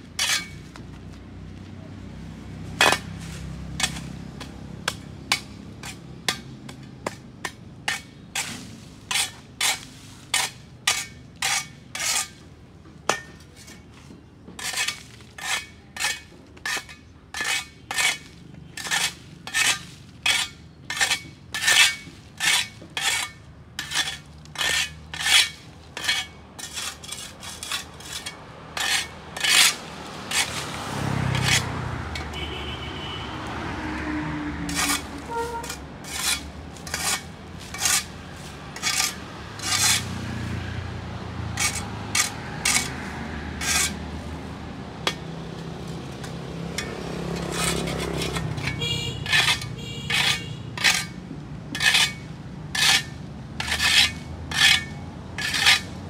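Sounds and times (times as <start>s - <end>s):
plastic dustpan scraping paving: 16.1s - 32.3s, 34.7s - 40.4s, 41.5s - 44.4s, 45.1s - 51.2s.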